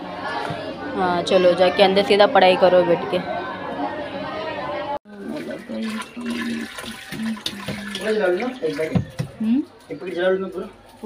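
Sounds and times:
water pouring from hose: 5.1s - 9.1s.

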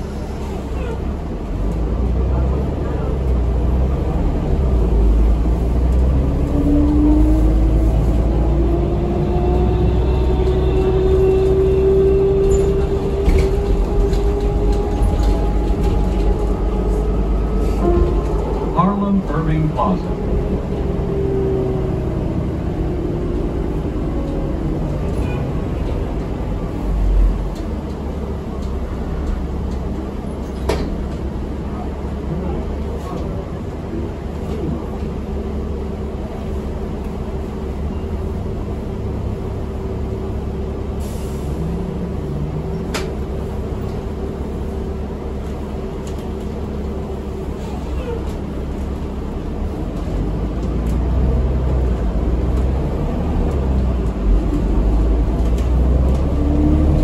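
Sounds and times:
bus engine rumble: 0.0s - 57.0s.

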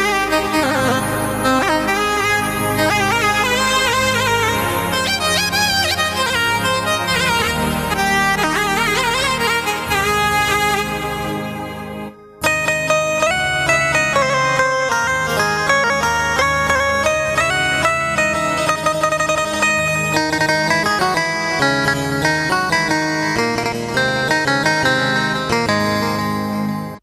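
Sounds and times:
synthesizer melody with chords: 0.0s - 27.0s.

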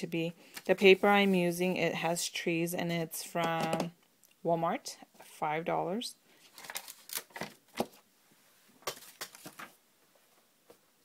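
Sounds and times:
paper rustling and tapping: 6.6s - 8.0s, 8.8s - 9.8s.

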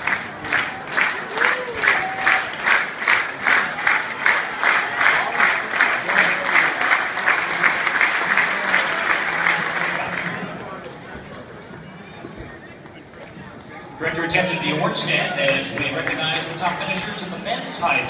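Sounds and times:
stadium crowd clapping in unison: 0.0s - 11.0s, 14.2s - 18.0s.

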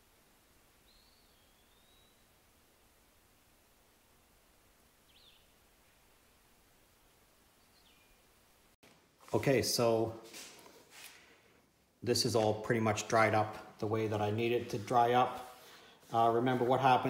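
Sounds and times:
high bird chirps: 0.8s - 2.2s, 5.1s - 5.5s.

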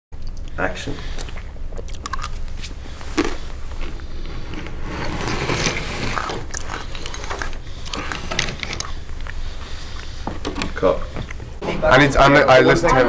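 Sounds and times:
steady low hum: 0.2s - 13.0s.

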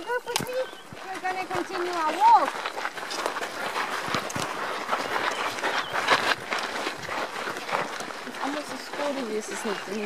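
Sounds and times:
footsteps crunching on dirt: 0.0s - 10.0s.

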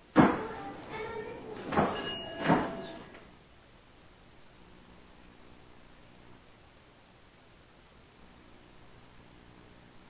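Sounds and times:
door banging: 0.1s - 3.2s.

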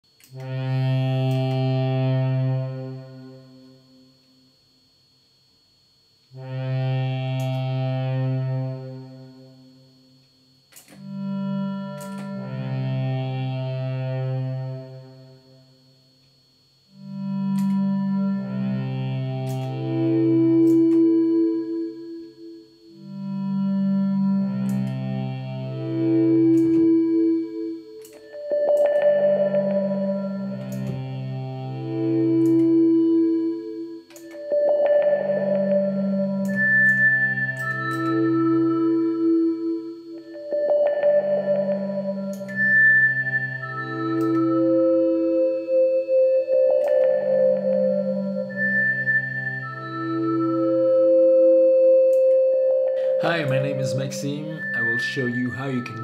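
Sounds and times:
synth-like drone tones: 0.1s - 4.2s, 6.3s - 10.1s, 10.7s - 15.9s, 16.9s - 56.0s
synthesized low note: 52.2s - 56.0s.

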